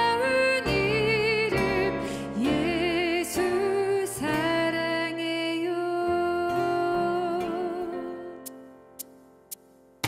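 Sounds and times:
acoustic guitar: 0.0s - 10.0s
sharp count-in ticks: 8.4s - 9.7s.

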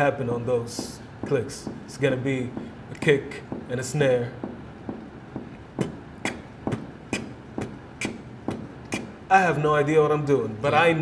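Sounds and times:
kick and snare beat: 0.6s - 9.3s.

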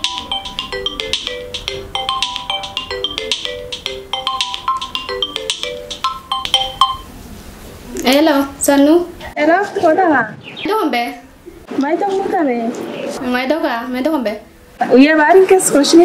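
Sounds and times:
smartphone ringtone: 0.0s - 7.1s.

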